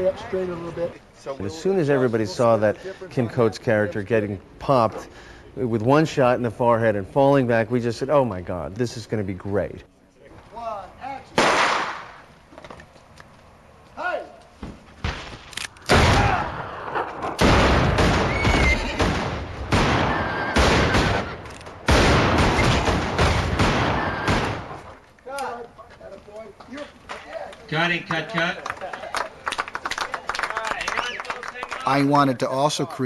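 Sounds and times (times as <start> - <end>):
gunshots: 11.4 - 12.2, 15.0 - 25.0.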